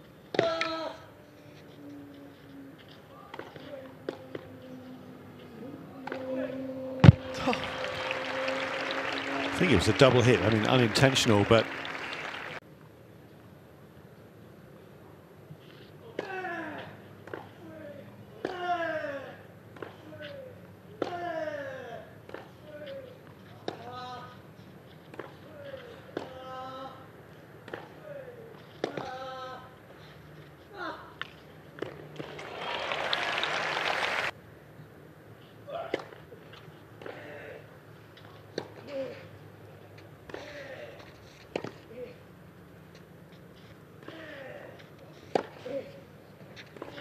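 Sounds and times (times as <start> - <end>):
crowd noise: 6.2 - 12.6, 32.0 - 34.3.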